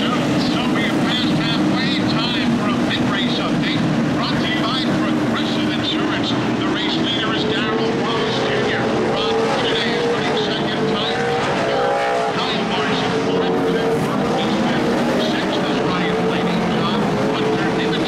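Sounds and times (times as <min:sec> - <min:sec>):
race truck engines droning: 0:00.0 - 0:18.0.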